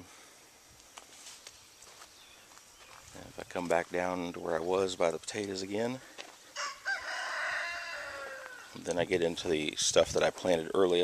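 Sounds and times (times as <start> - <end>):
faint breeze hiss: 0.0 - 11.0
soft scuffing footsteps: 0.8 - 4.2, 5.2 - 6.6
faint chickens: 5.8 - 9.1.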